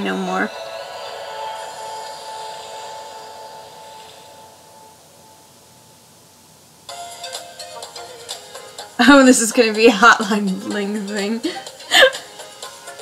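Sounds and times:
music through laptop speakers: 0:00.0 - 0:05.6, 0:06.9 - 0:13.0
faint hiss: 0:00.0 - 0:13.0.

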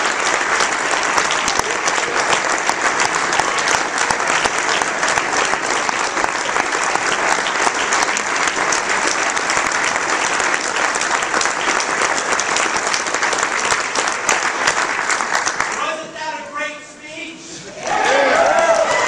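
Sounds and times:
audience applauding: 0:00.0 - 0:16.2, 0:17.7 - 0:19.0.

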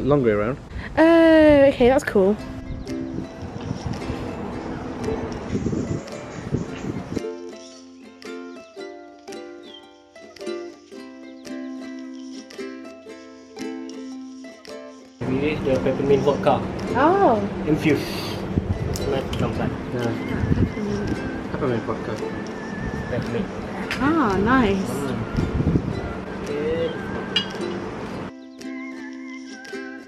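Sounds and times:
outdoor rustling: 0:00.0 - 0:30.0
plucked string tune: 0:02.0 - 0:30.0.

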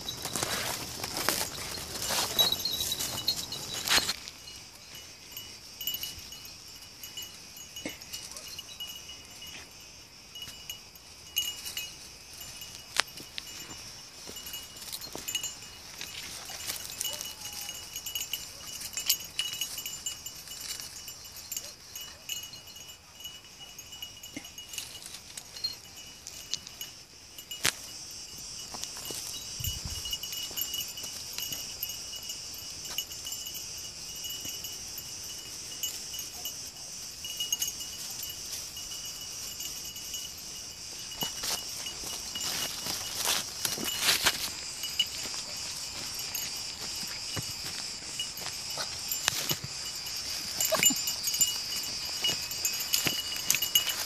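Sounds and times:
insect chorus: 0:00.0 - 0:54.0.

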